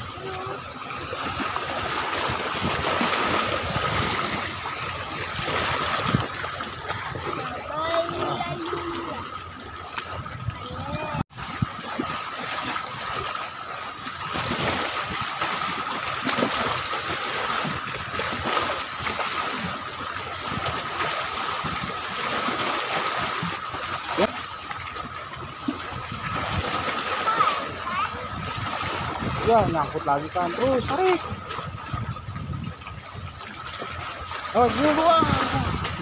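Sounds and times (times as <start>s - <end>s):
seawater lapping against rocks: 0.0s - 36.0s.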